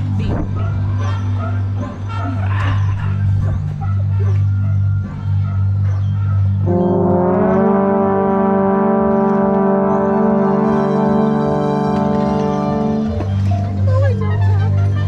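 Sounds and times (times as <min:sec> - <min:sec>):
bass trombone low drone: 0:00.0 - 0:15.0
brass horns loud held chord: 0:05.5 - 0:15.0.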